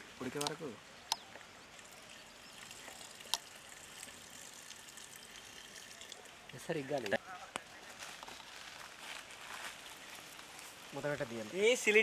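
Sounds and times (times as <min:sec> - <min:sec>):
liquid pouring into clay pot: 0:01.7 - 0:07.2.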